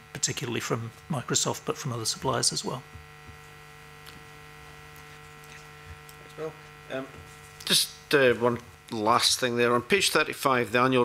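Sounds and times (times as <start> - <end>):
steady electrical hum: 0.0 - 11.0.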